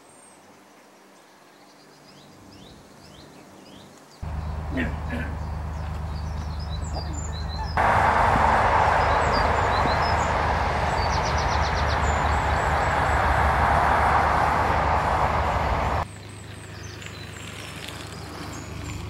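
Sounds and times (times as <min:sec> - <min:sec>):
birds chirping: 0:01.6 - 0:16.0
boat engine idling hum: 0:04.2 - 0:16.0
loud rushing noise: 0:07.8 - 0:16.0.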